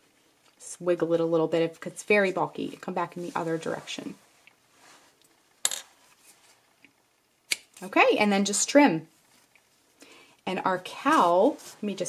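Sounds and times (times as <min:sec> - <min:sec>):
handling of yarn: 0:01.6 - 0:06.8, 0:10.8 - 0:12.0.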